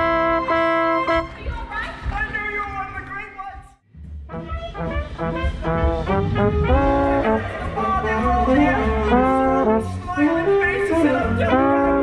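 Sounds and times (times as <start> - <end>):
trombone playing held notes: 0.0 - 1.3, 4.3 - 12.0
pit orchestra: 0.0 - 1.6, 4.3 - 12.0.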